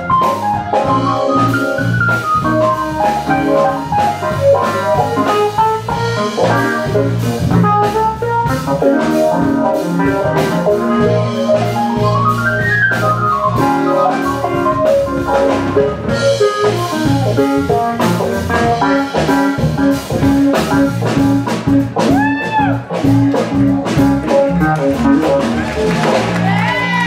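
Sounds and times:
keyboard lead line bending pitch: 0.0s - 26.4s
drum kit: 0.0s - 27.0s
electric bass line: 0.0s - 27.0s
jazz-funk band playing: 0.0s - 27.0s.

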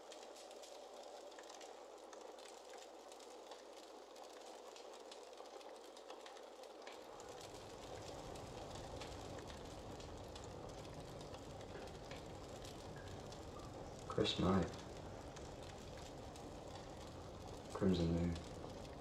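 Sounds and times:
faint hiss: 0.0s - 19.0s
light crackles: 0.0s - 19.0s.

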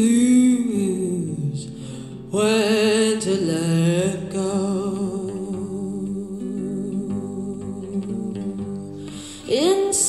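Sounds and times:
softly picked acoustic guitar: 0.0s - 10.0s.

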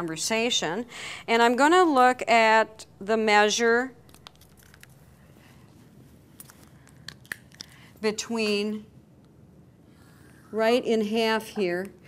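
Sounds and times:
marker handling clicks and rustles: 4.0s - 5.5s, 6.3s - 8.6s.

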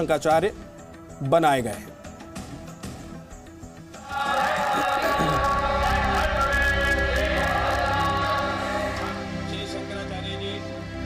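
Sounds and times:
choir singing held chords: 4.0s - 10.2s.

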